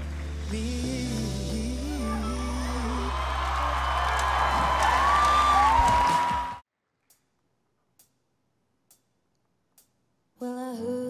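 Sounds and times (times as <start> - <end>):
audience cheering and whistling: 2.2 - 6.6.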